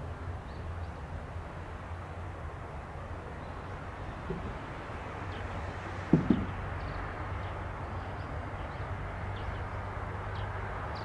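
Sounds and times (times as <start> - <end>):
outdoor background rumble: 0.0 - 11.0
sharp double knock: 6.1 - 6.6.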